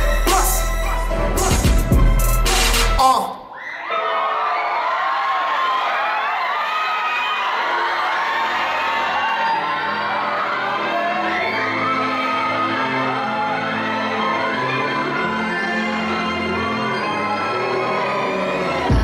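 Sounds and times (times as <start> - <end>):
hip-hop track: 0.0 - 3.5, 16.2 - 19.0
audience cheering and whooping: 3.4 - 19.0.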